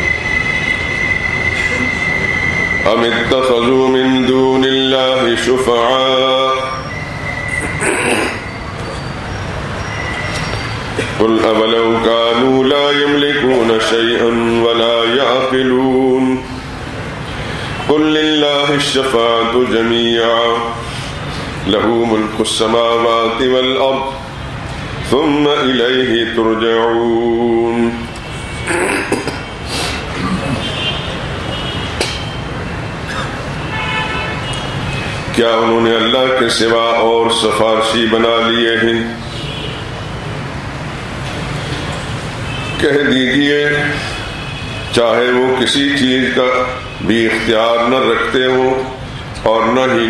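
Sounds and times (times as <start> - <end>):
faint steady high tone: 0.0 - 4.4
road traffic rumble: 0.0 - 50.0.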